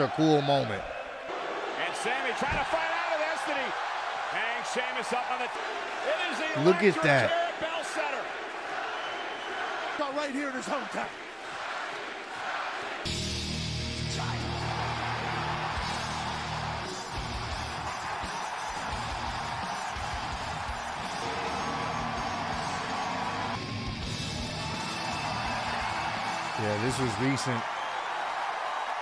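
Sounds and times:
arena crowd cheering: 0.0s - 29.0s
entrance theme music: 13.1s - 27.2s.

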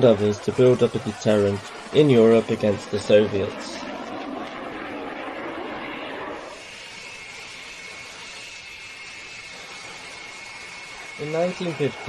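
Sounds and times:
jet engine rushing hiss: 0.0s - 12.0s
thin high whine: 0.0s - 12.0s.

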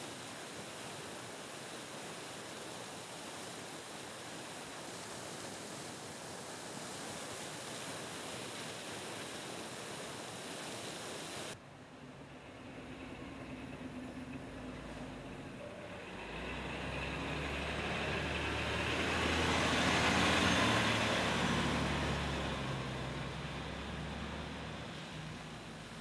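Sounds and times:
water gushing from hydrant: 0.0s - 26.0s
fire engine idling: 11.6s - 21.5s
water splashing on pavement: 16.1s - 26.0s.

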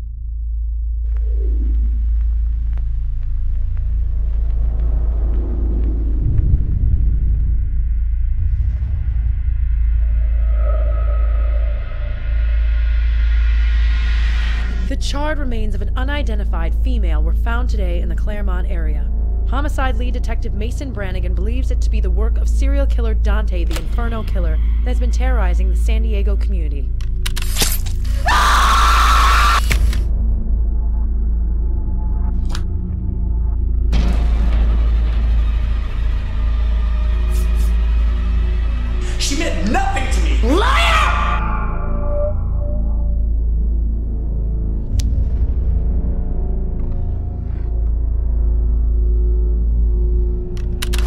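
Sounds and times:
deep rumble: 0.0s - 27.1s
low music drone: 0.0s - 27.4s, 29.7s - 51.0s.

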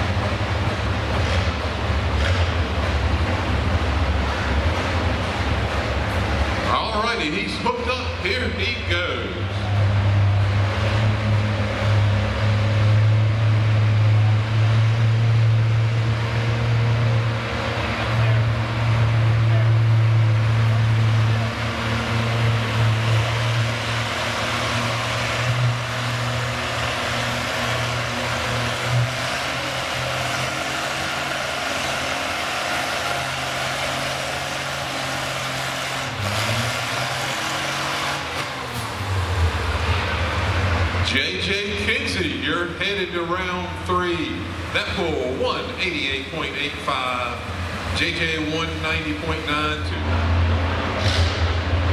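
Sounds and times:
tractor engine working under load: 0.0s - 51.9s.

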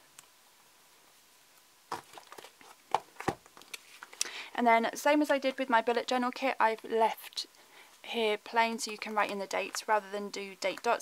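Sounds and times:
paper rustling: 1.9s - 4.2s.

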